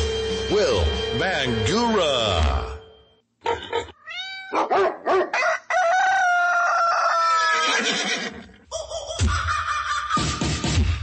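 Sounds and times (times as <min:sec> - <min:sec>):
rooster crowing: 0:04.4 - 0:07.9.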